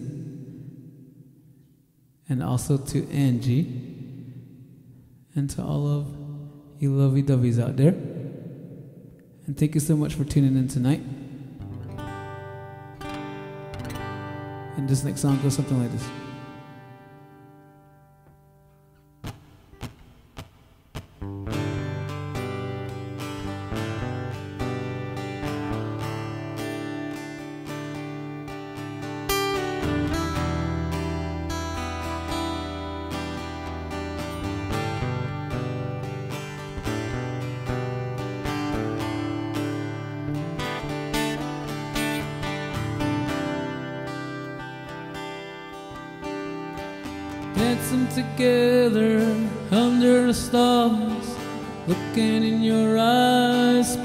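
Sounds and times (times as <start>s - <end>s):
acoustic guitar strumming: 10.6s - 54.0s
man singing: 47.3s - 54.0s.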